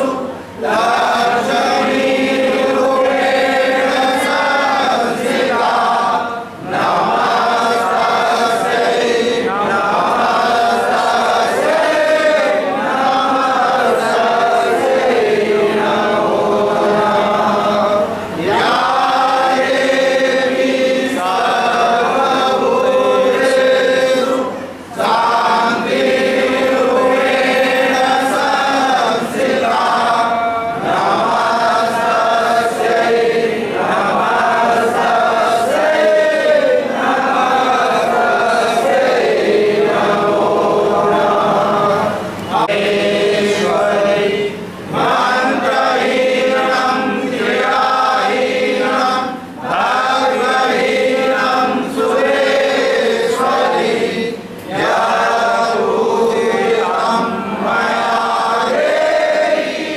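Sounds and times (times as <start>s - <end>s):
group chanting a hymn: 0.0s - 59.9s.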